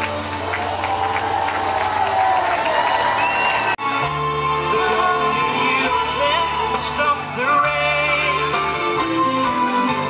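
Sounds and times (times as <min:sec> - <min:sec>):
audience clapping and cheering: 0:00.0 - 0:05.4
live band music: 0:03.8 - 0:10.0.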